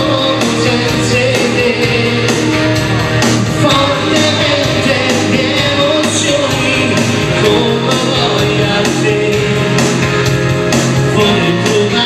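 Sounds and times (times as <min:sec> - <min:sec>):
backing music with steady beat: 0:00.0 - 0:12.0
man singing pop love song: 0:00.0 - 0:12.0.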